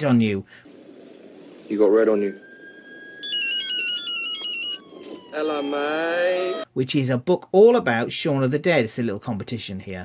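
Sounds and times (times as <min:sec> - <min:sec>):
faint falling tone: 0:01.6 - 0:06.6
phone ringtone beeps: 0:02.3 - 0:05.8.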